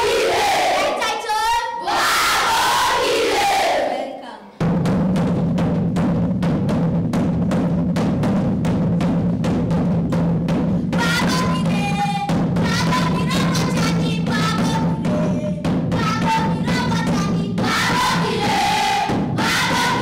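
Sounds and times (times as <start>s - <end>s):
drum beaten with a stick: 0.0s - 3.9s, 4.6s - 20.0s
children shouting and singing: 0.0s - 4.4s, 11.0s - 20.0s.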